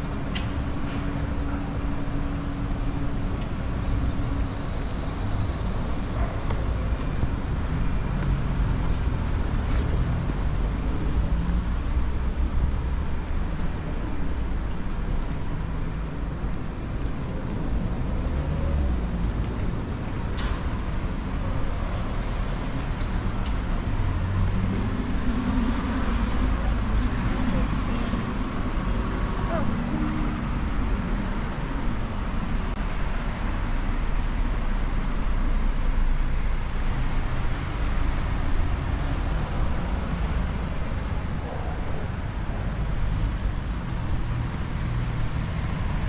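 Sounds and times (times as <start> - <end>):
passing cars and buses: 0.0 - 46.0.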